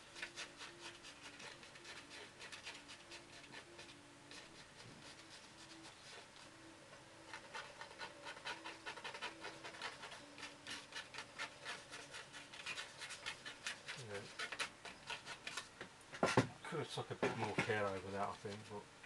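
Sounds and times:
card scraping wet paint on paper: 0:00.0 - 0:06.5, 0:07.2 - 0:16.4.

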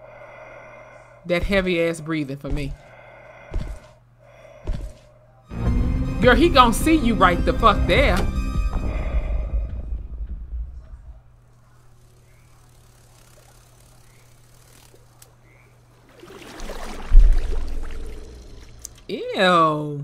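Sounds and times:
dark low music: 0:05.5 - 0:11.3
faint low hum: 0:08.0 - 0:20.0
deep boom: 0:17.1 - 0:18.4.

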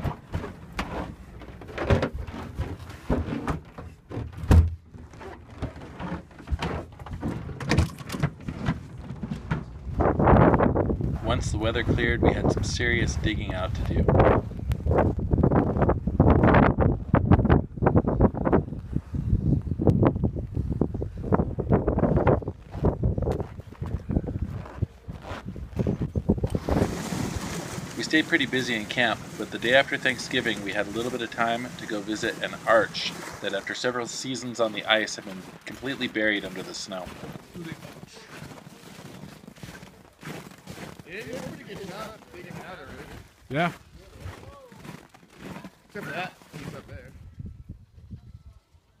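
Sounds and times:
wind buffeting microphone: 0:09.4 - 0:28.0, 0:47.0 - 0:48.6
footsteps crunching on snow: 0:22.2 - 0:47.0.

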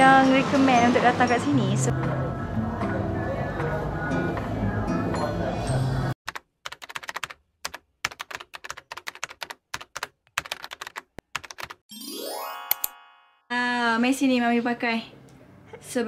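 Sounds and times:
background shop music: 0:00.0 - 0:06.2
rising ringing sweep with ding: 0:11.9 - 0:13.5.

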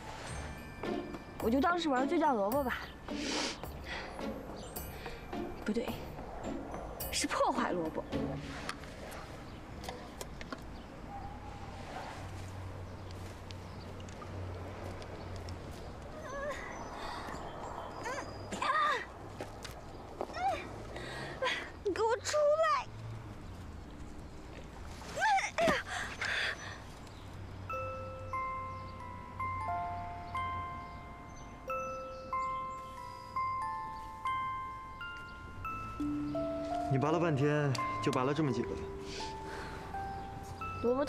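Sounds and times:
soft bell-like chime notes: 0:00.0 - 0:07.7, 0:27.7 - 0:41.0
wavering chirping call: 0:27.7 - 0:41.0.

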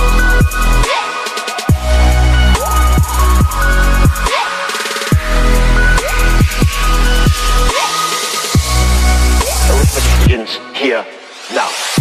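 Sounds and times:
electronic dance music with heavy bass: 0:00.0 - 0:12.0.

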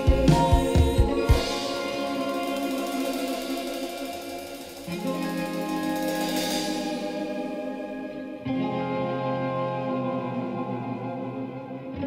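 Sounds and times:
live band instrumental music: 0:00.0 - 0:08.9.

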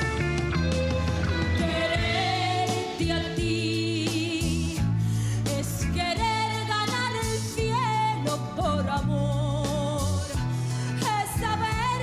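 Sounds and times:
band accompaniment: 0:00.0 - 0:12.0
woman singing into a microphone: 0:01.6 - 0:12.0.

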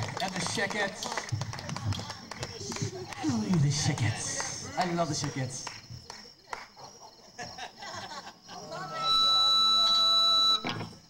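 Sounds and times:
scattered voices: 0:00.0 - 0:09.9
high-pitched feedback squeal: 0:08.9 - 0:10.9.

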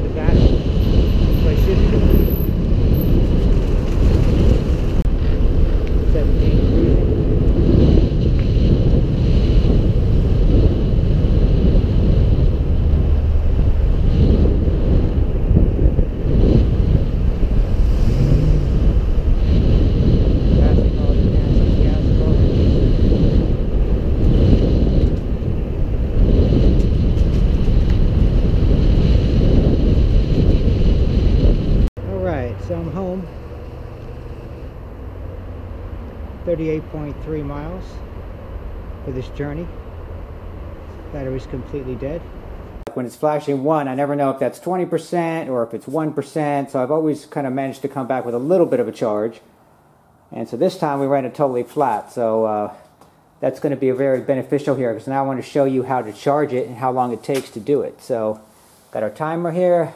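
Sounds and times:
wind rumbling on microphone: 0:00.0 - 0:42.9
road traffic: 0:00.0 - 0:43.0, 0:49.4 - 0:53.5, 0:55.8 - 0:59.0.

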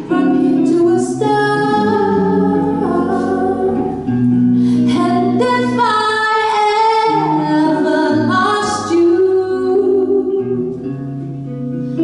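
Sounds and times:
female jazz vocalist singing: 0:00.0 - 0:04.2, 0:04.8 - 0:10.7
electric guitar accompaniment: 0:00.0 - 0:12.0.

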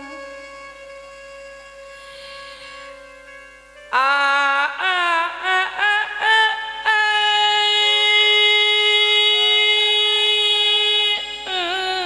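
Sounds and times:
devotional music with held note: 0:00.0 - 0:12.0.

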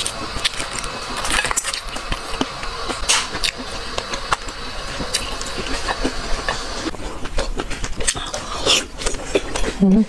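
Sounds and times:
eggshell crackling: 0:00.0 - 0:08.7.

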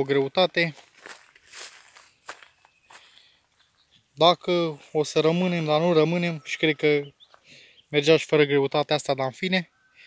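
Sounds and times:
footsteps on dry grass: 0:00.0 - 0:06.4.

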